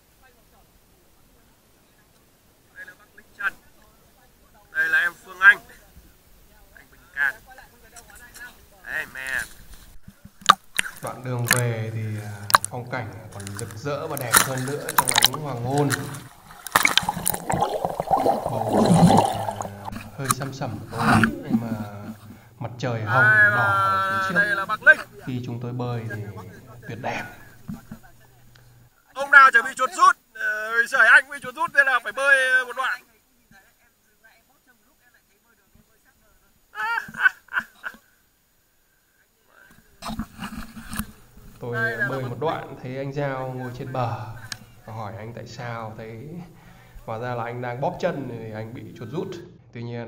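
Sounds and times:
person speaking: 0:10.8 - 0:29.8
water sloshing and gurgling: 0:12.3 - 0:22.5
sharp splash: 0:13.4 - 0:20.3.

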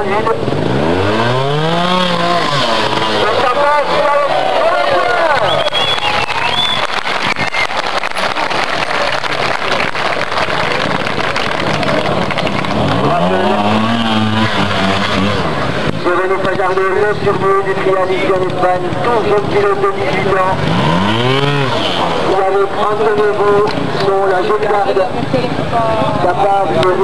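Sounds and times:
motorcycle engine revving in bursts: 0:00.0 - 0:04.4, 0:12.5 - 0:16.1, 0:18.8 - 0:23.6
crowd chatter: 0:00.0 - 0:27.0.

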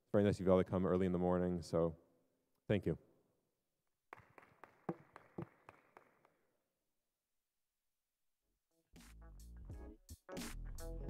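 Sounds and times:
faint sparse applause: 0:04.1 - 0:06.5.

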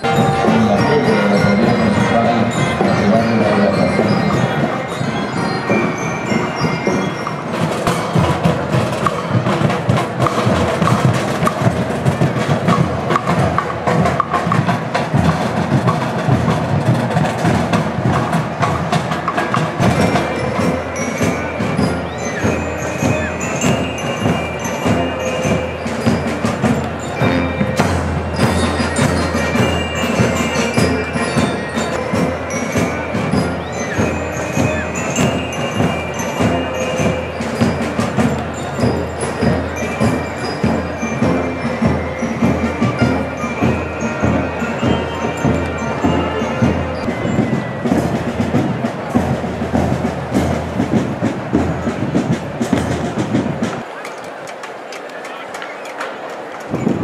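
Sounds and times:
bell lyres ringing: 0:00.0 - 0:50.4
drums beating: 0:00.0 - 0:57.0
marching band playing: 0:00.0 - 0:57.0.

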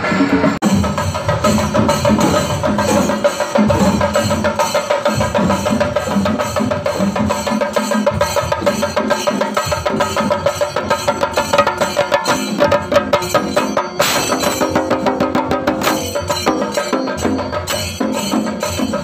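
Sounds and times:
drums beaten with sticks: 0:00.0 - 0:19.0.

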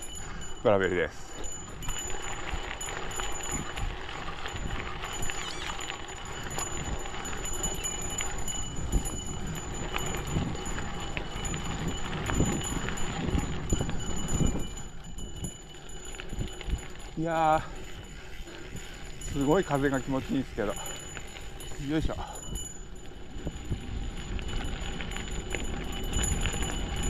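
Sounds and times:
bike tyres crunching on gravel: 0:00.0 - 0:27.0
wind rumble on microphone: 0:00.0 - 0:27.0.

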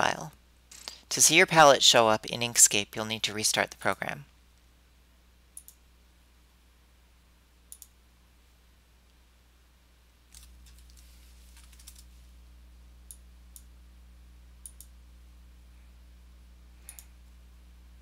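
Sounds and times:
low steady background hum: 0:00.0 - 0:18.0
faint computer mouse clicks: 0:05.6 - 0:05.8, 0:07.7 - 0:08.0, 0:14.6 - 0:14.9, 0:16.9 - 0:17.1.

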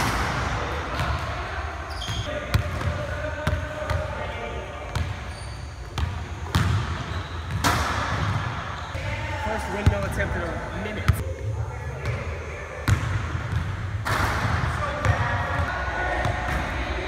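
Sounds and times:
murmur of voices: 0:00.0 - 0:05.2, 0:14.6 - 0:17.0
basketballs bouncing on wood floor: 0:06.0 - 0:08.6.

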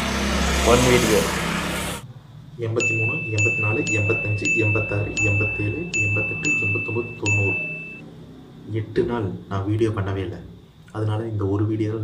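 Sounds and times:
bright chime dings: 0:02.8 - 0:08.0.

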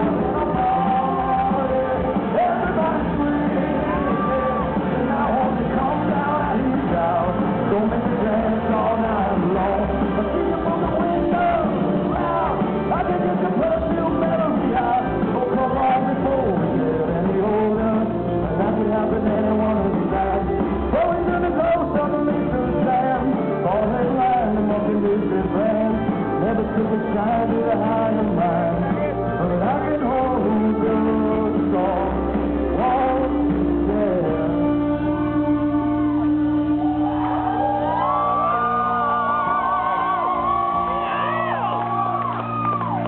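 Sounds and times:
live rock band playing: 0:00.0 - 0:43.0
crowd whooping and shouting: 0:00.5 - 0:06.1, 0:10.8 - 0:13.2, 0:35.8 - 0:43.0.

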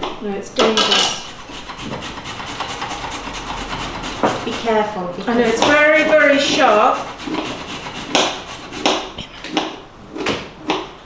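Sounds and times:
ginger scraping on grater: 0:00.7 - 0:09.2.

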